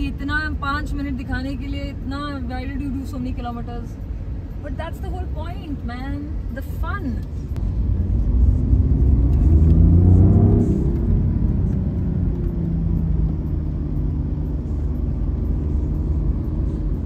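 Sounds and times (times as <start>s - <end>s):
car accelerating from inside: 7.6s - 17.0s.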